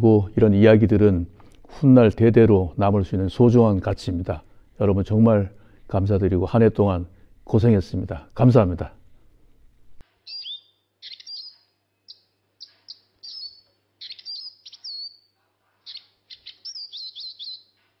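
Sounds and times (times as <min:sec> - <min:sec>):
bird chirping: 0:10.1 - 0:17.8.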